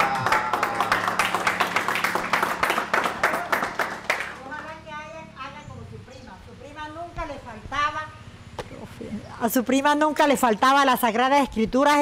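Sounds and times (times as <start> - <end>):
small audience clapping: 0.0 - 4.8.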